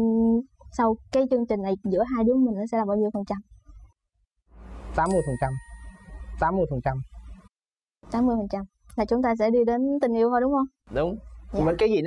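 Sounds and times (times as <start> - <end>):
man speaking: 5.0 - 5.6, 6.4 - 7.1, 10.9 - 12.0
bright ding chime: 5.1 - 6.4.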